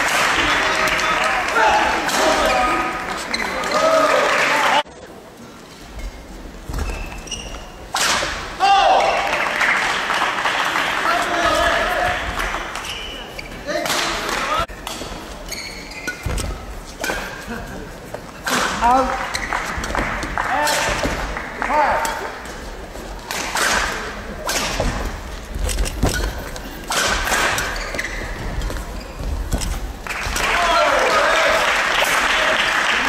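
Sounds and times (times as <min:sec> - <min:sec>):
shoes squeaking on floor: 0:05.7 - 0:07.9, 0:12.8 - 0:13.8, 0:14.7 - 0:17.4, 0:19.1 - 0:20.3, 0:25.2 - 0:30.0.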